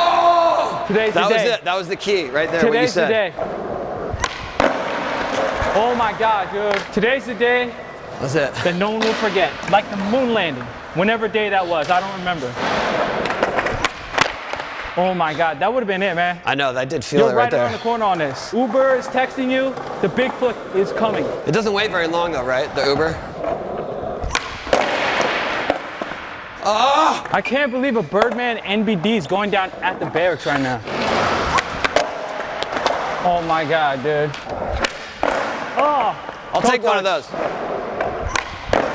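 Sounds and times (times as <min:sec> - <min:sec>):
skateboard wheels rolling on concrete: 0:02.0 - 0:14.9, 0:18.0 - 0:27.4, 0:28.2 - 0:38.9.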